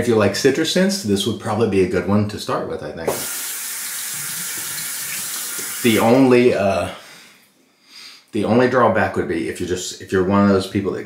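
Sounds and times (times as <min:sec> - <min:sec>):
water running from sink tap: 0:03.1 - 0:06.3.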